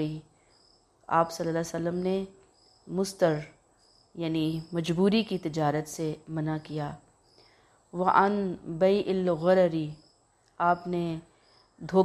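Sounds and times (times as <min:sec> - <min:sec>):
woman lecturing: 0:00.0 - 0:00.2, 0:01.1 - 0:03.5, 0:04.2 - 0:07.0, 0:08.0 - 0:10.0, 0:10.6 - 0:12.0.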